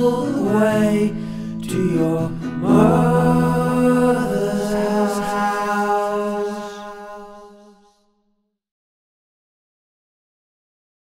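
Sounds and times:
held sung note with accompaniment: 0:00.0 - 0:08.0.

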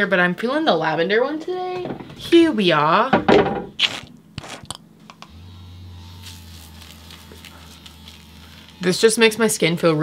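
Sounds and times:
cleansing brush buzzing: 0:05.2 - 0:10.0.

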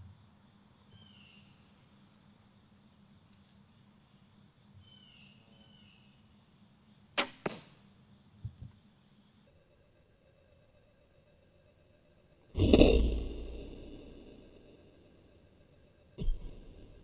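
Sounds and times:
low thuds: 0:16.2 - 0:17.0.

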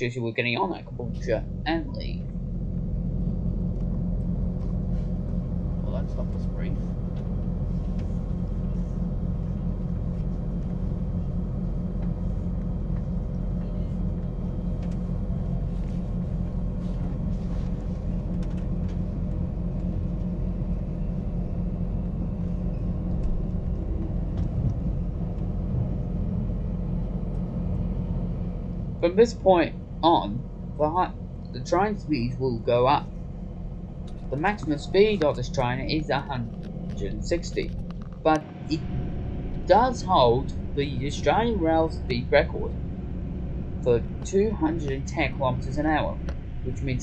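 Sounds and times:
train low rumble from inside: 0:00.0 - 0:47.0.

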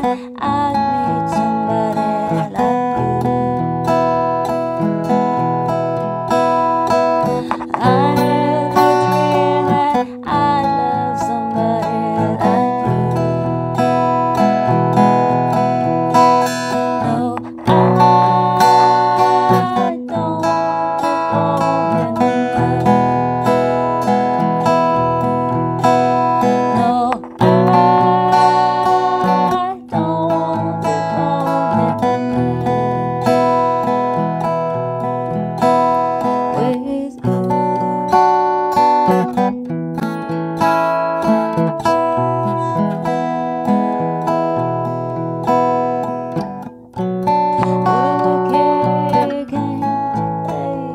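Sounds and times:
woman singing: 0:00.0 - 0:05.5, 0:06.9 - 0:34.2, 0:35.6 - 0:39.5, 0:47.3 - 0:50.9
acoustic guitar fingerpicking: 0:00.0 - 0:50.9.

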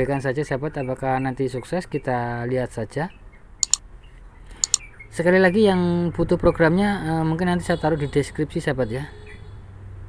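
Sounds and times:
computer mouse double-clicks: 0:04.6 - 0:04.8.

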